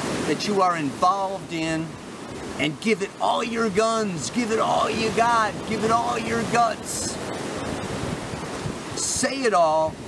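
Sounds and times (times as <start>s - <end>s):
surf breaking on rocky shore: 0.0s - 10.0s
wind on microphone: 3.5s - 10.0s.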